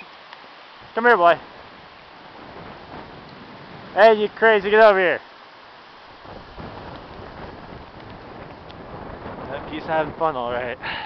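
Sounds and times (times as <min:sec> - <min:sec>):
wind noise on microphone: 0:00.8 - 0:05.1, 0:06.1 - 0:11.0.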